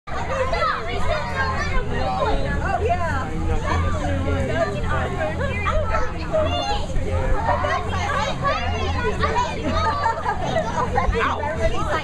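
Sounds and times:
children chattering and calling out: 0:00.1 - 0:12.0.

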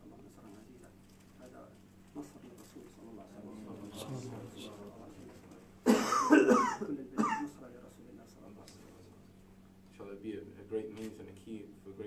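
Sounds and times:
person coughing loudly: 0:05.8 - 0:07.5.

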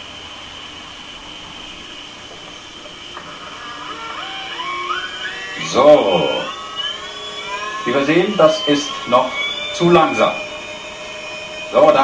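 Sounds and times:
low motor hum: 0:00.0 - 0:12.0
stepper motor high whine: 0:00.0 - 0:12.0.

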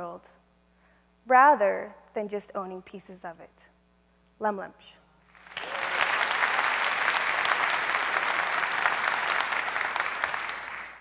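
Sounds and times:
audience applauding: 0:05.3 - 0:11.0.

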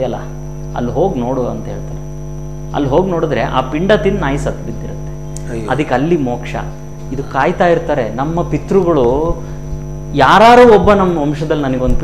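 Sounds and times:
electrical mains hum: 0:00.0 - 0:12.0
man's voice: 0:05.4 - 0:06.4.

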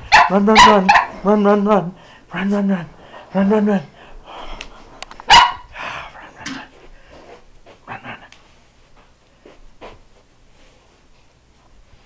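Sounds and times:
dog barking: 0:00.1 - 0:01.2, 0:05.3 - 0:05.7.

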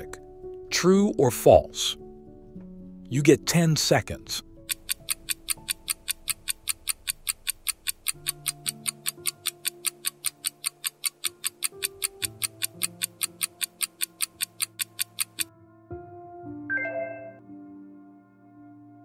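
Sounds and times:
soft background music: 0:00.0 - 0:19.0
clock ticking: 0:04.6 - 0:15.5.

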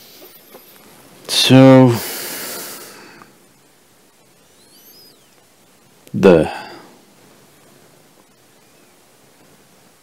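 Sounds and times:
faint bird chirp: 0:00.0 - 0:01.0, 0:02.0 - 0:10.0
breathy hiss: 0:00.0 - 0:04.0, 0:06.4 - 0:07.0.

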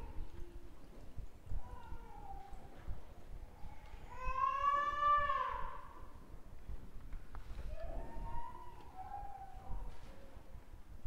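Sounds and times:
high-pitched wailing cries: 0:03.6 - 0:06.0.

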